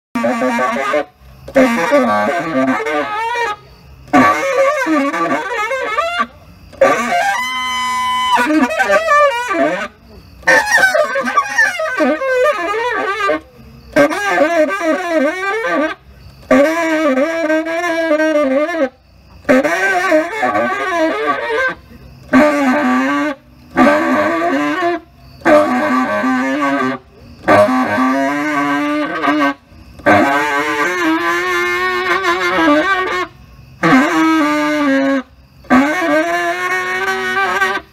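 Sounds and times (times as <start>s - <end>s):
tenor saxophone improvising: 0.2s - 37.9s.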